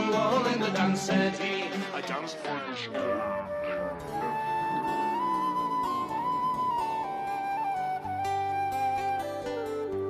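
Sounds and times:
flute melody: 3.0 - 10.0.

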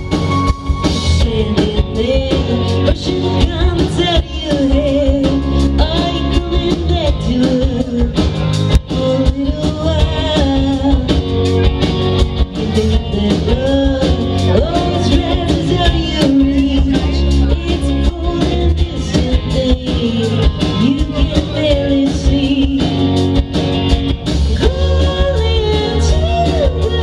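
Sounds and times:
rock band playing: 0.0 - 27.0
woman singing: 0.8 - 11.6, 12.5 - 23.2, 24.5 - 27.0.

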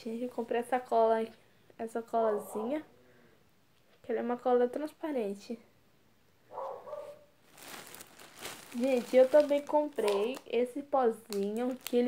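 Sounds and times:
plastic bag rustling: 7.4 - 12.0.

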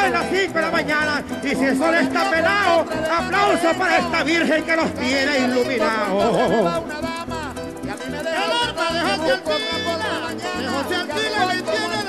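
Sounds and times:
harp folk music: 0.0 - 12.0
plucked bass line: 0.0 - 12.0.

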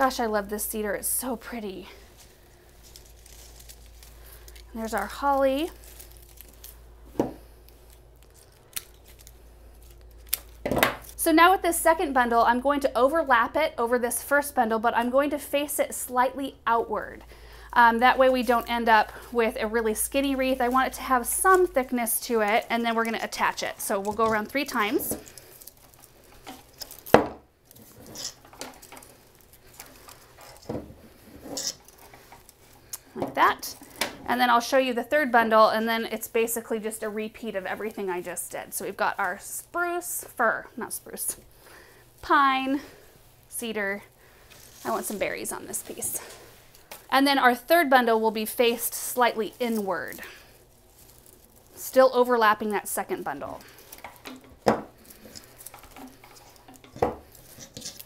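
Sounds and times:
rustling of evergreen sprigs: 0.0 - 58.0
soft crackles: 0.0 - 58.0.

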